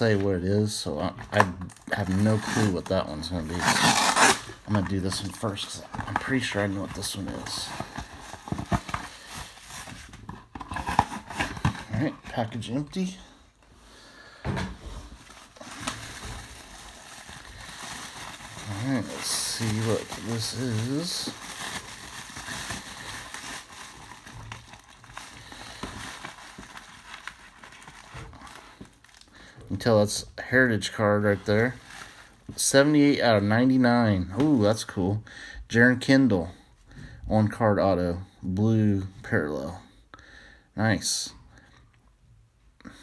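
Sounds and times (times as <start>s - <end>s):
bubble wrap and plastic bag crinkling: 0.0s - 13.3s, 14.4s - 35.1s
cardboard mailer rustling: 14.4s - 29.0s.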